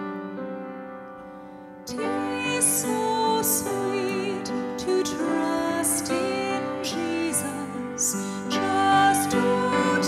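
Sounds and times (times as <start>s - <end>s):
slow hymn on church keyboard: 0.0s - 10.0s.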